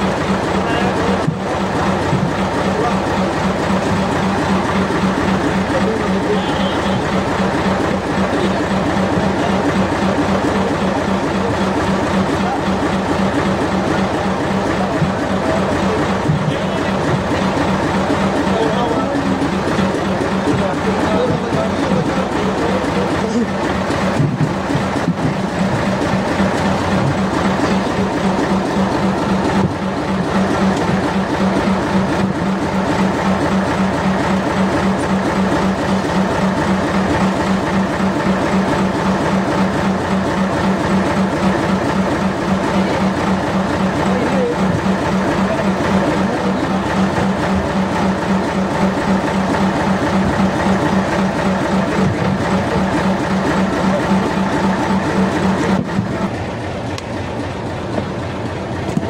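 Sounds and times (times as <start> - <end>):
boat engine throbbing: 0.0 - 59.0.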